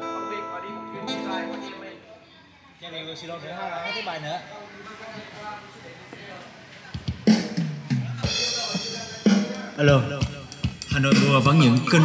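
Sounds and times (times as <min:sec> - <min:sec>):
acoustic guitar: 0:00.0 - 0:02.0
drum beat: 0:07.0 - 0:12.0.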